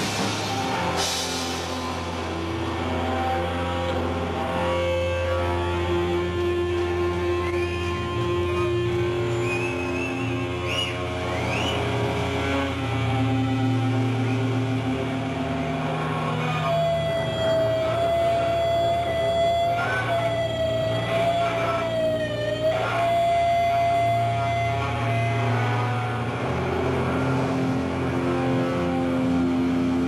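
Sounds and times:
folk-rock band playing: 0.0 - 30.0.

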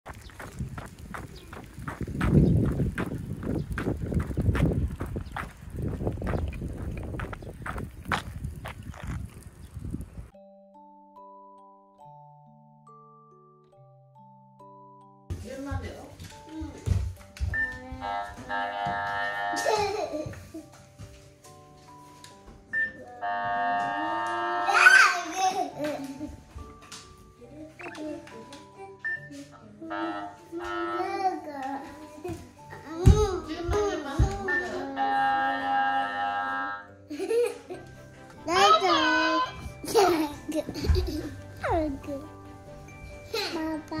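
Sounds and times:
shoes scuffing on asphalt: 0.1 - 9.4
quiet background music: 9.7 - 44.0.

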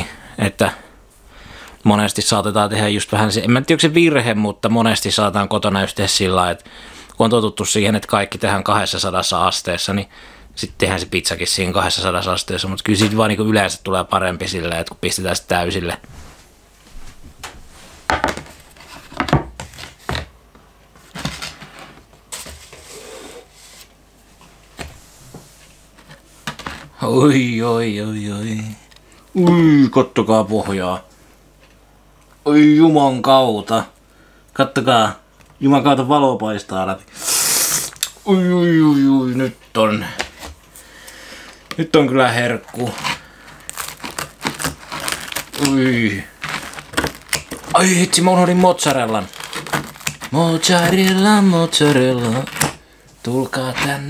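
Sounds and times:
wooden board knocking on table: 18.1 - 18.5
scissors crunching pizza crust: 42.6 - 52.8.

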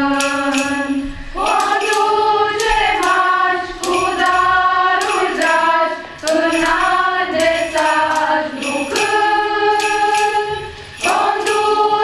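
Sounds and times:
choir of women singing: 0.0 - 12.0.

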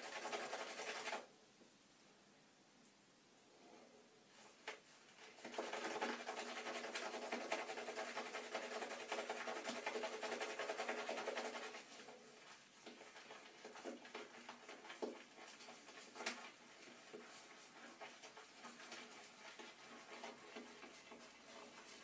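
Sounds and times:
shaving brush whisking lather: 0.0 - 1.3, 5.1 - 22.0.

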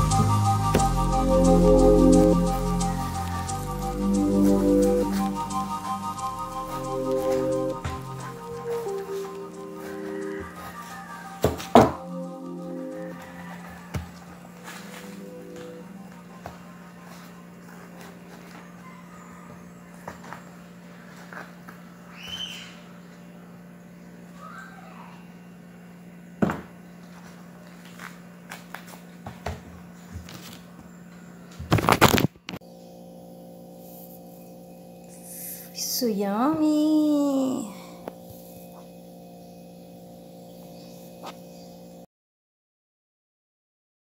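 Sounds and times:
steady low hum: 0.0 - 31.6, 32.6 - 42.1.

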